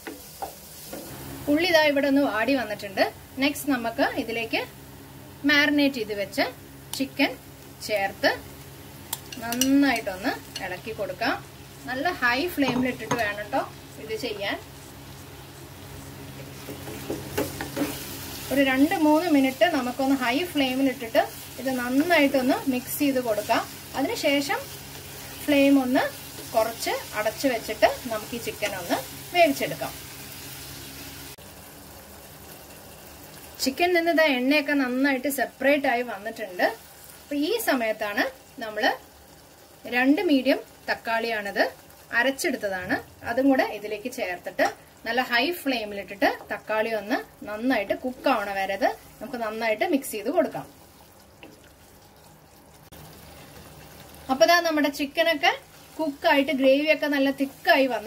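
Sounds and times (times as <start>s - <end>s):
chicken sizzling in a pot: 0.0s - 58.0s
woman talking: 5.4s - 8.4s, 9.4s - 14.7s, 18.5s - 24.6s, 25.4s - 30.0s, 33.6s - 39.0s, 39.9s - 50.7s, 54.3s - 58.0s
spatula scraping and knocking pan: 12.5s - 13.5s, 16.4s - 18.1s.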